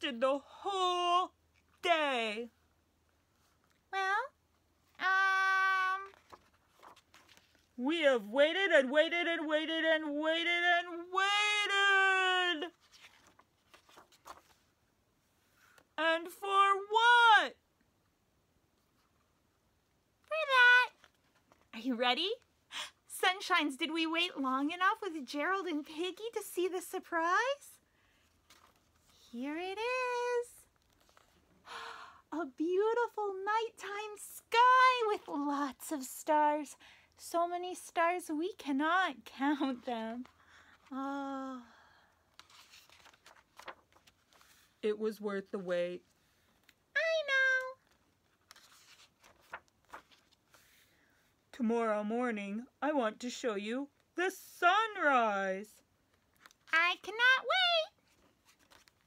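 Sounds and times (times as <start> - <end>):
woman's voice: 0.0 - 2.6, 3.9 - 4.4, 5.0 - 6.2, 7.8 - 12.8, 16.0 - 17.6, 20.3 - 21.0, 21.7 - 27.8, 29.2 - 30.7, 31.8 - 40.3, 40.9 - 41.8, 44.8 - 46.0, 47.0 - 47.8, 51.6 - 55.8, 56.7 - 58.0
woman's squeaky character voice: 4.0 - 4.4, 5.0 - 6.1, 47.0 - 47.8, 56.7 - 58.0.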